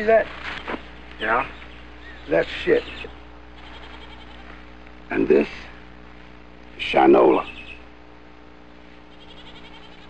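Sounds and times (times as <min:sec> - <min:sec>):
steady low hum: 0:00.0 - 0:10.0
rapid high-pitched chirping: 0:00.6 - 0:04.4, 0:06.9 - 0:08.0, 0:09.1 - 0:10.0.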